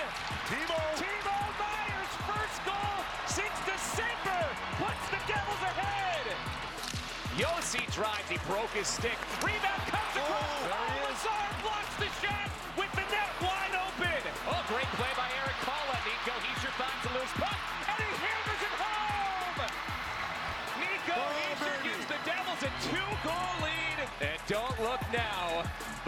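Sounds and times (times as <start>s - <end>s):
background music: 0.0s - 26.0s.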